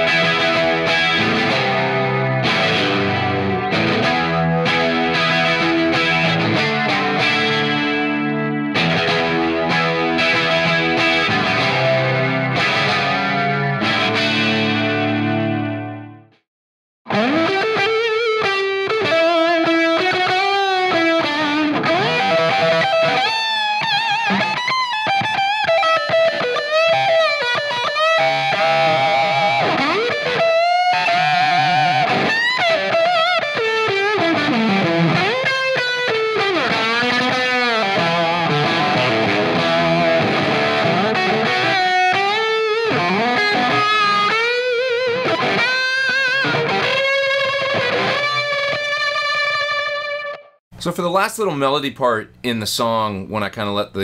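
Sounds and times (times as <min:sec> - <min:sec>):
electric guitar chord: 0:00.0 - 0:16.2, 0:17.1 - 0:50.5
distorted electric guitar lead: 0:00.0 - 0:16.3, 0:17.1 - 0:50.6.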